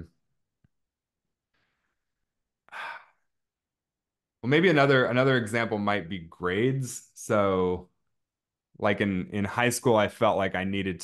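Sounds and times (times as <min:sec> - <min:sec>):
man sighing: 0:02.6 - 0:03.3.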